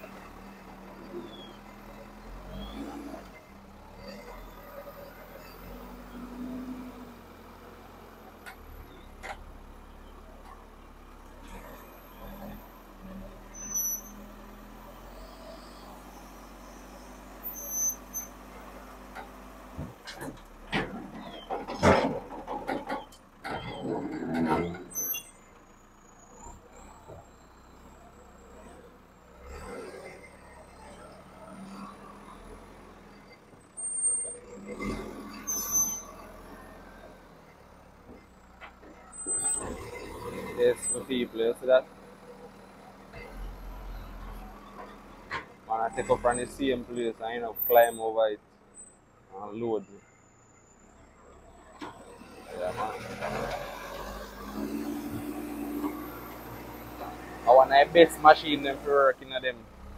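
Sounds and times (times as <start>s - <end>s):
diesel engine running: 0.0s - 59.9s.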